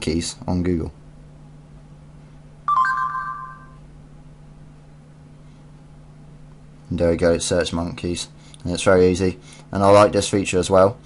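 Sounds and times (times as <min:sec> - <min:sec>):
voice search chime: 0:02.7 - 0:03.8.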